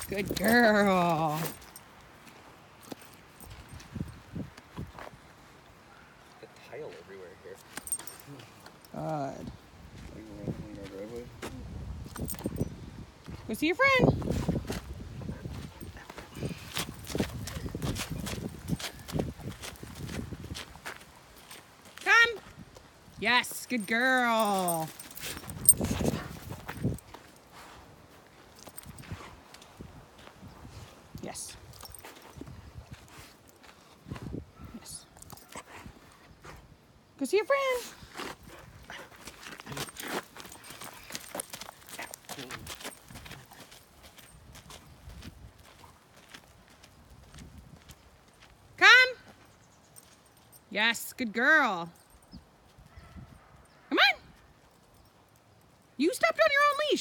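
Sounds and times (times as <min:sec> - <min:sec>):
dog paws on gravelly dirt: 0:00.0 - 0:05.7, 0:14.0 - 0:36.2, 0:37.9 - 0:51.4
footsteps on gravel: 0:39.1 - 0:48.6.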